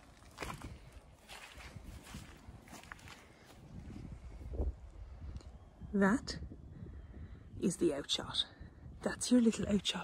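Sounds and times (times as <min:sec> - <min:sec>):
footsteps through wet grass: 0:00.0 - 0:04.0.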